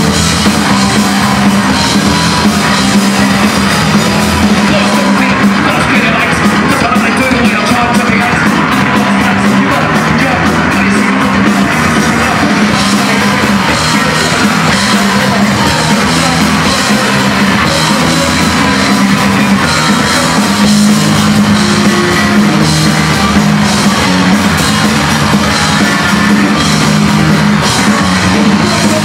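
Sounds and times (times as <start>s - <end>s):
punk rock band playing: 0.0s - 29.0s.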